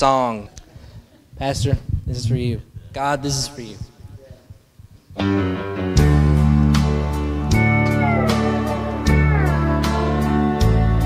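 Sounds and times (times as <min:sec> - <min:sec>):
guitar playing sustained chords: 0:05.2 - 0:11.0.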